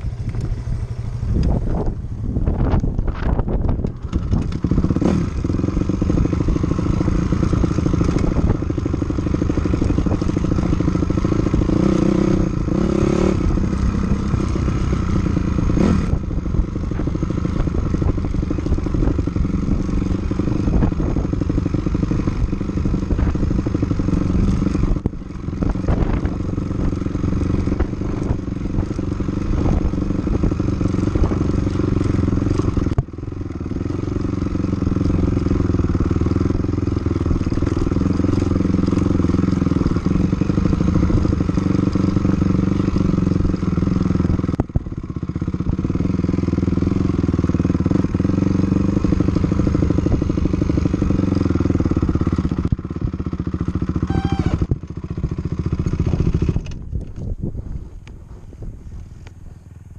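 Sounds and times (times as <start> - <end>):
dirt bike engine running: 0.0 - 59.9.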